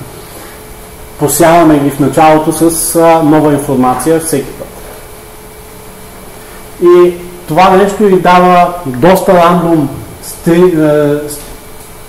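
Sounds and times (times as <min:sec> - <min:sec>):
background hiss: 0:00.0 - 0:12.0
faint hum: 0:00.0 - 0:12.0
man speaking: 0:01.2 - 0:04.9, 0:06.8 - 0:11.6.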